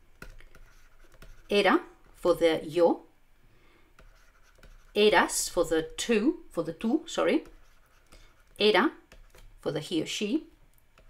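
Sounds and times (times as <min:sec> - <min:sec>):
stylus scratching on tablet: 0:00.2 - 0:02.4, 0:04.0 - 0:09.7.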